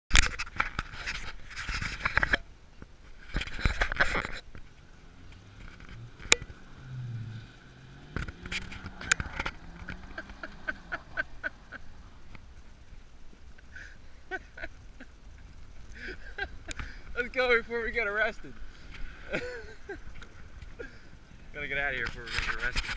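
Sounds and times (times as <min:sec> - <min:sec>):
rushing noise on microphone: 0:00.1 - 0:19.3, 0:20.3 - 0:22.9
distant pickup engine revving: 0:04.7 - 0:12.6.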